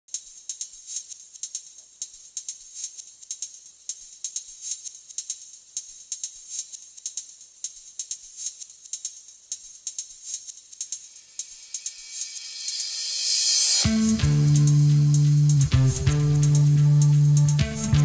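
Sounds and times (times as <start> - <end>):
rapid shaker percussion ticking: 0.1 - 18.0.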